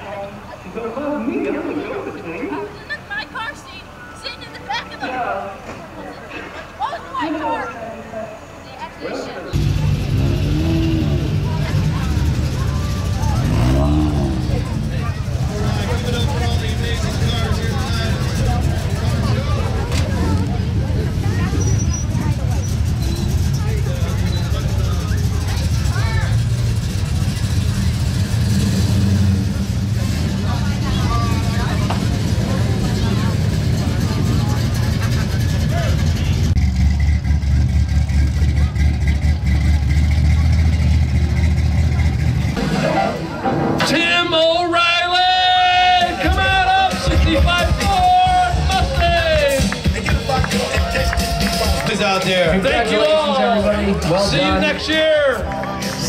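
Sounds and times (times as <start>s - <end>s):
crowd voices: 0.0s - 56.0s
car engines rolling past: 8.4s - 56.0s.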